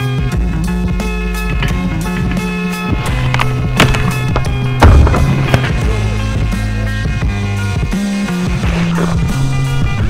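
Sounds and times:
rock music: 0:00.0 - 0:10.0
heavy thud: 0:02.9 - 0:06.7.

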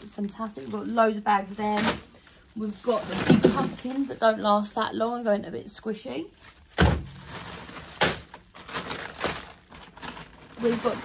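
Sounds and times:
frozen bags clattering: 0:00.0 - 0:04.9, 0:06.5 - 0:11.0
plastic bags crinkling: 0:00.0 - 0:05.2, 0:06.3 - 0:11.0.

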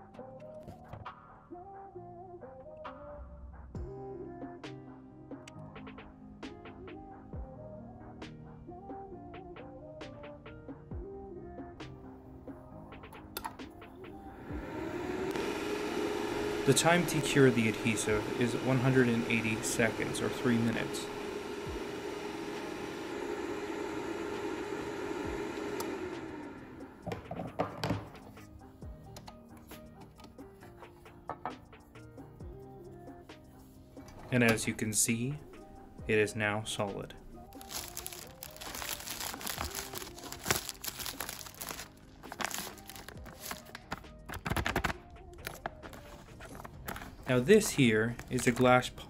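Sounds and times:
background music: 0:00.0 - 0:49.0
cooling fan winding down: 0:14.0 - 0:27.4, 0:34.3 - 0:44.0
plastic bag crinkling: 0:37.4 - 0:47.5.

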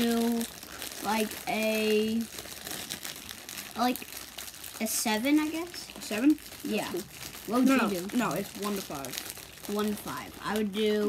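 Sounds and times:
plastic crisp bag crinkling: 0:00.0 - 0:11.0.

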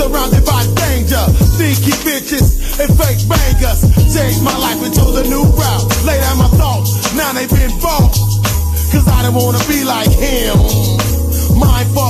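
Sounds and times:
drum hits: 0:00.0 - 0:11.9
deep bass notes: 0:00.0 - 0:12.0
rapping: 0:00.0 - 0:12.0.

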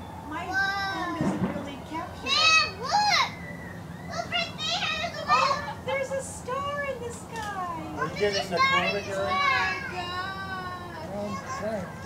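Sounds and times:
people exclaiming and whooping: 0:02.2 - 0:06.7.

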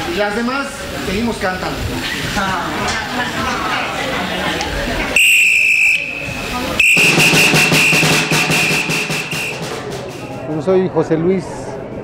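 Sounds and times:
whistle blasts: 0:05.2 - 0:10.3
drumming: 0:05.2 - 0:10.5.

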